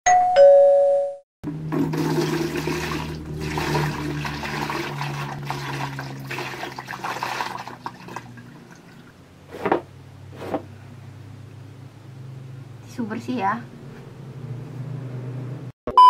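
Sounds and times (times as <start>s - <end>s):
two-note ding-dong chime: 0.1s - 1.2s
water pouring and splashing: 1.7s - 9.2s.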